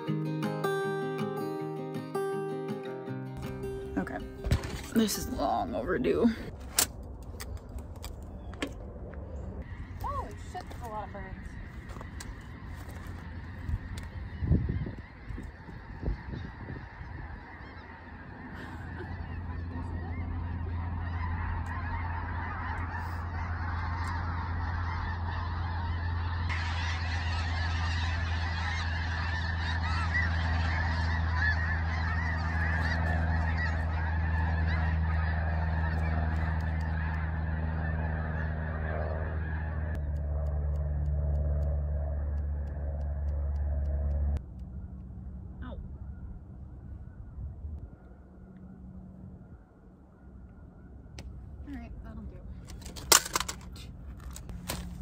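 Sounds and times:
flock of birds calling: 0:03.4 - 0:06.6, 0:07.4 - 0:40.2, 0:45.7 - 0:55.0
steady low hum: 0:03.4 - 0:55.0.

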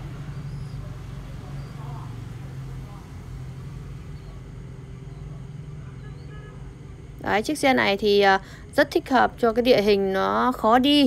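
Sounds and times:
vehicle engine idling: 0:00.0 - 0:07.2.

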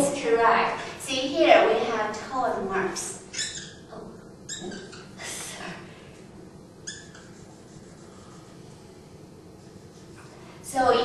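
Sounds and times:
marker squeaking on whiteboard: 0:03.3 - 0:03.9, 0:04.5 - 0:05.2, 0:06.8 - 0:08.8.

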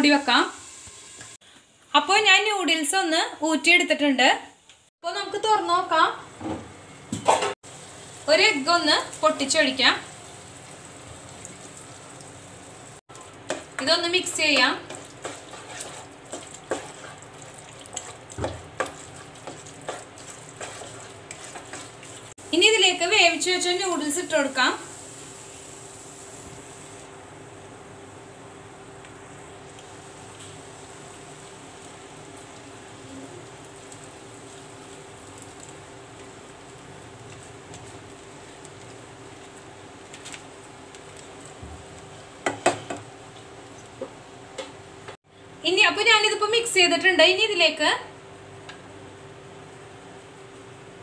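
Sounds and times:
vegetables sizzling in a pan: 0:00.0 - 0:02.9, 0:07.3 - 0:45.1
spatula scraping colander: 0:14.8 - 0:22.4.

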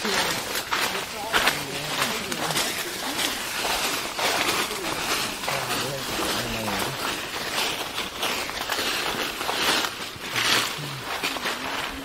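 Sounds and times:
low voices: 0:00.0 - 0:07.2, 0:10.1 - 0:12.0
brushing past undergrowth: 0:00.0 - 0:12.0
footsteps crunching through dry leaves: 0:00.0 - 0:12.0.

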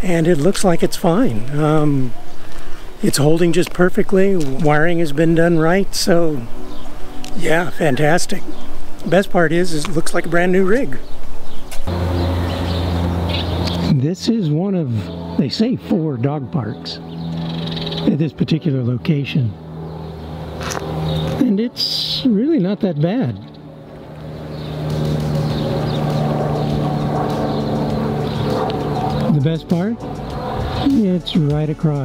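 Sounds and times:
low mechanical hum: 0:00.0 - 0:30.9
birds chirping: 0:00.0 - 0:32.0
motor running steadily: 0:00.0 - 0:32.0.

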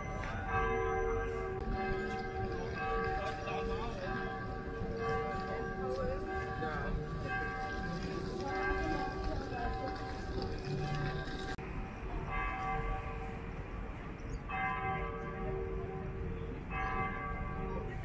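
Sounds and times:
bells ringing: 0:00.0 - 0:18.0.

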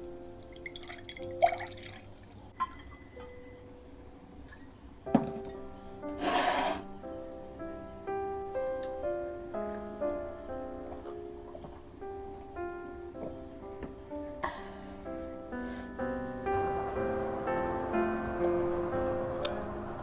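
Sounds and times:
soft piano music: 0:00.0 - 0:20.0
juice pouring into a glass: 0:00.6 - 0:02.9.

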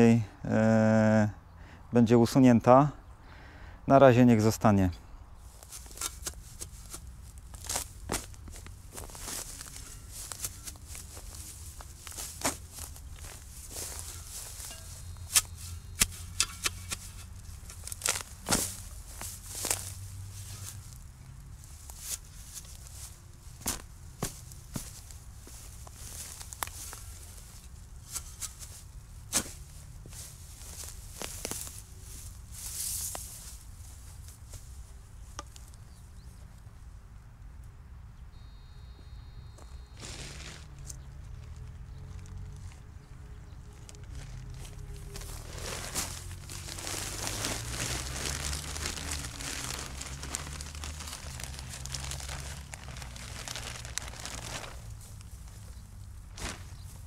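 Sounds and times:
spade digging into soil: 0:05.6 - 0:07.1, 0:13.9 - 0:18.8, 0:27.6 - 0:29.6, 0:40.0 - 0:40.8.

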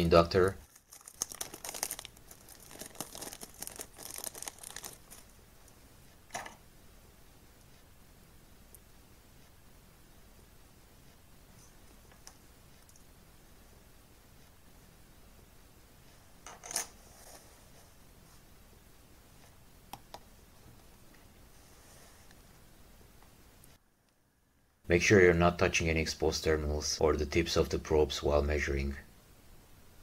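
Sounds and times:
plastic zip bag crinkling: 0:00.6 - 0:05.3
small hard objects clattering: 0:00.7 - 0:05.2.

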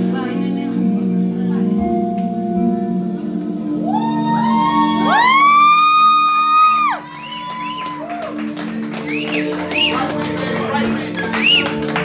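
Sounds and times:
low sustained accompaniment: 0:00.0 - 0:12.0.

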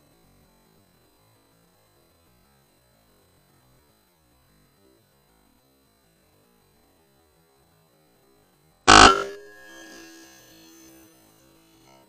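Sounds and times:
rifle shot with ringing tail: 0:08.9 - 0:10.1.

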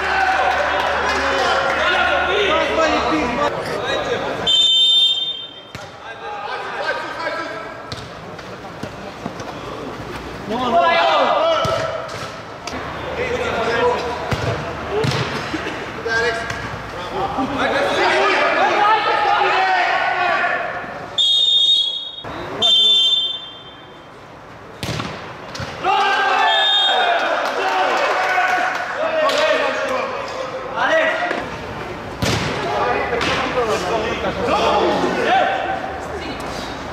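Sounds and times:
players calling in indoor hall: 0:00.0 - 0:36.9
ball thuds: 0:32.2 - 0:32.6.

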